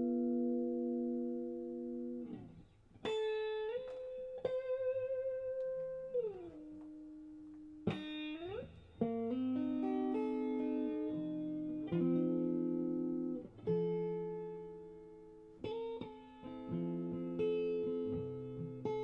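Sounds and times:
solo guitar notes: 0.0s - 19.0s.

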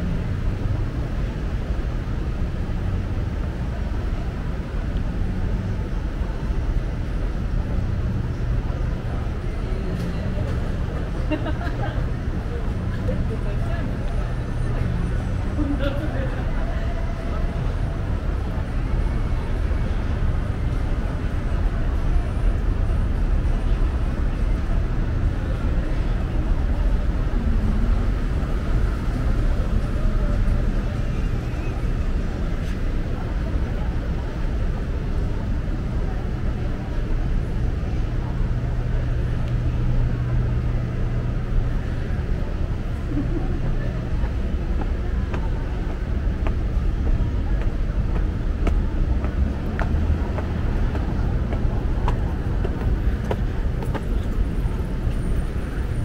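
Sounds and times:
road traffic rumble: 0.0s - 56.0s.

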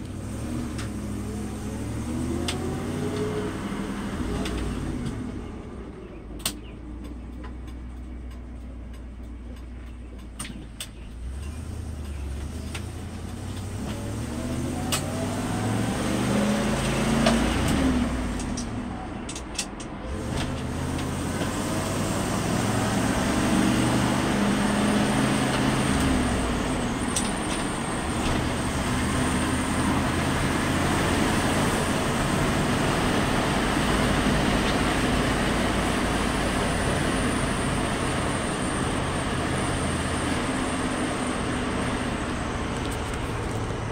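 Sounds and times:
pickup truck engine accelerating: 0.0s - 43.9s
road noise: 0.0s - 43.9s.

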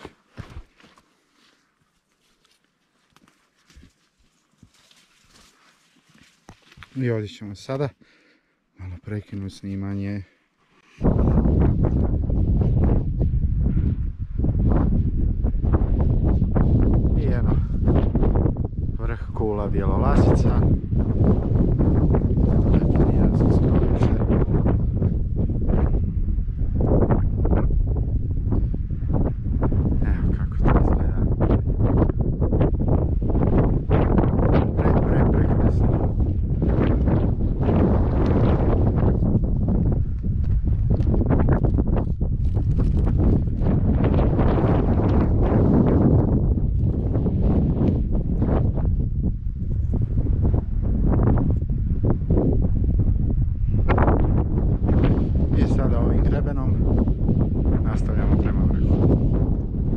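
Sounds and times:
wind buffeting microphone: 11.0s - 59.9s.

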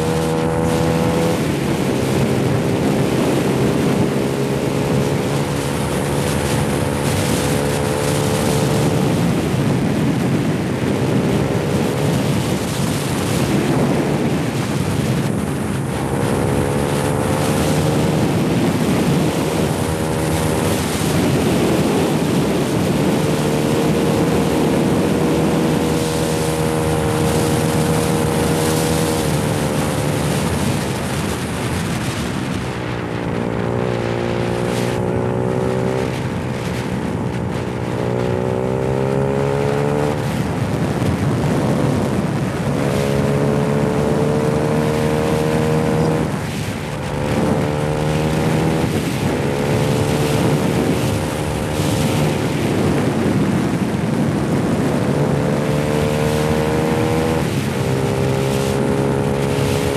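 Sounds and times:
motorcycle engine revving: 0.0s - 59.9s
wind and road noise: 0.0s - 59.9s.

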